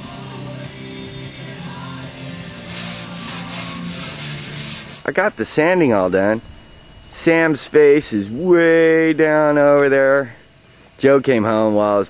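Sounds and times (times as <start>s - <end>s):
background music: 0.0s - 5.0s
sandpaper rubbing back and forth: 2.6s - 5.1s.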